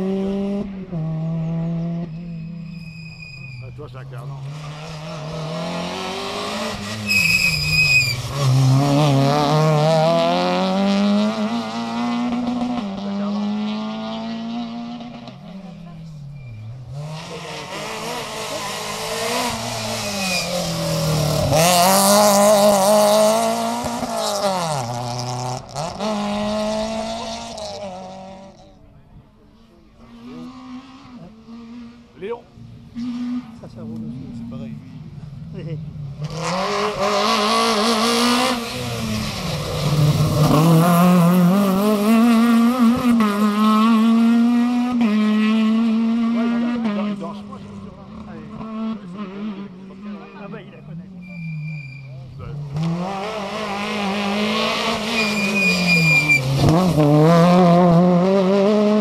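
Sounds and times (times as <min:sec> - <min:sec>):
rally car engines revving: 0:00.0 - 0:59.0
brief high squeal: 0:02.4 - 0:03.8, 0:07.0 - 0:08.2, 0:20.1 - 0:20.6, 0:51.2 - 0:52.2, 0:55.2 - 0:56.5.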